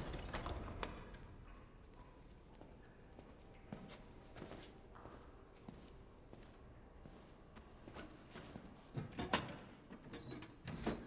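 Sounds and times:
hard footsteps in large room: 0.0s - 9.0s.

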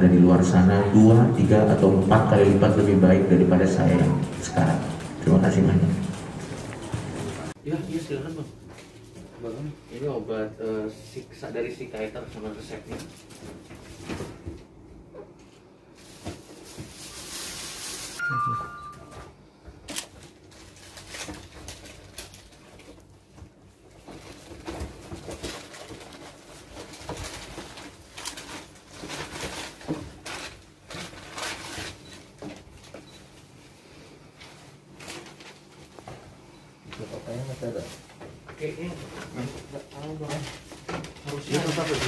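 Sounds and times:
rustling paper and plastic: 16.0s - 18.2s, 20.0s - 33.4s, 34.3s - 36.2s, 37.0s - 42.0s
two-note electronic beep: 18.2s - 19.3s.

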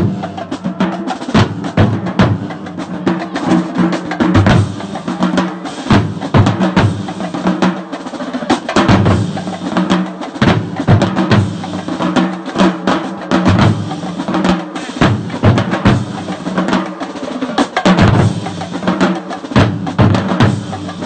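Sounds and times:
marching drums pounding: 0.0s - 21.0s.

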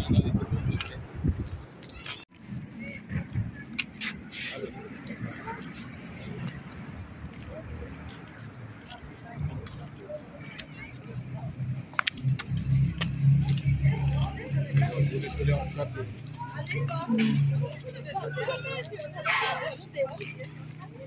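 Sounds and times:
people talking at a distance: 2.0s - 21.0s.

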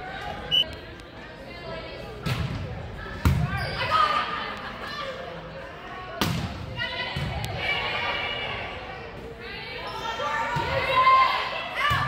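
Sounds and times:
voices of players and spectators: 0.0s - 12.0s.

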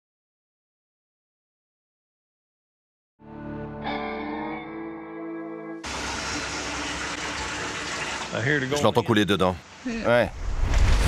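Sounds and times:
liquid gushing into plastic barrel: 5.9s - 8.8s.

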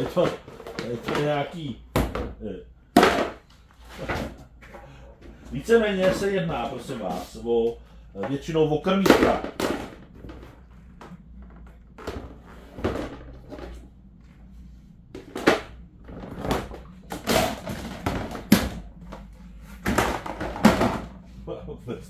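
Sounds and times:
plastic parts knocking: 0.0s - 4.4s, 8.2s - 13.8s, 15.2s - 21.2s.

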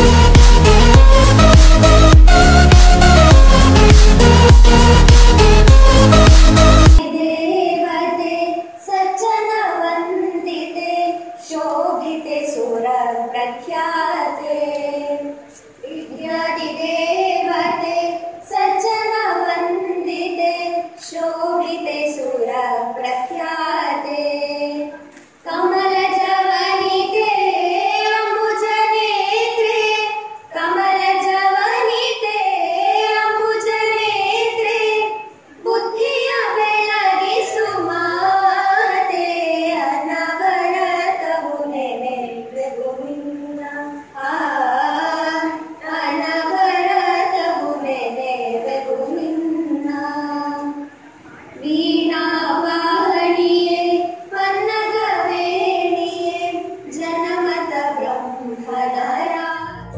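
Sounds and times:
women singing together: 0.0s - 59.9s.

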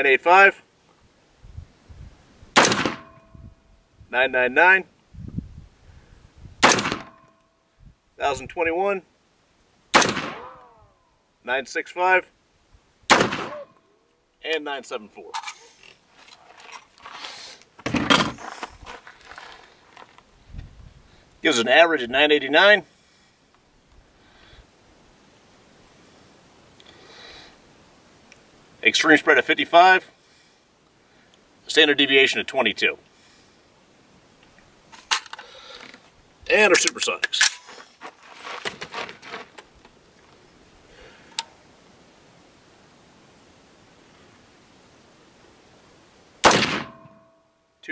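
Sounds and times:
sharp rifle click: 2.6s - 3.3s, 6.6s - 7.3s, 10.0s - 10.7s, 46.4s - 47.2s
rustling handling noise: 15.3s - 20.4s, 36.8s - 40.5s
rifle metallic clicks and rattles: 34.4s - 36.0s, 36.8s - 37.8s.

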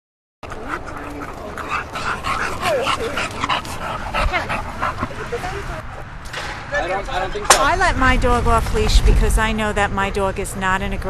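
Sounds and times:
dogs barking and yipping: 0.4s - 6.2s.

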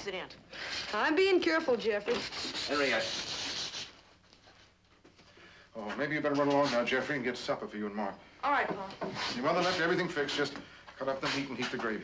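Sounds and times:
sandpaper rasping on wood: 2.1s - 3.9s, 9.1s - 10.5s, 11.2s - 11.8s.

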